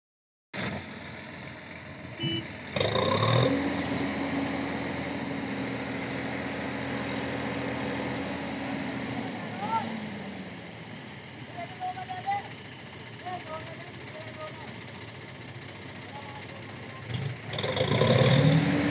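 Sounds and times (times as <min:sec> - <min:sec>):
tractor diesel engine revving: 0:00.6 - 0:18.9.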